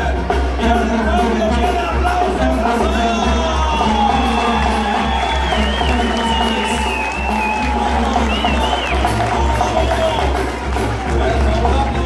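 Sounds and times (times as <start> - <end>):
brass band playing: 0.0 - 12.0
deep tuba bass line: 0.0 - 12.0.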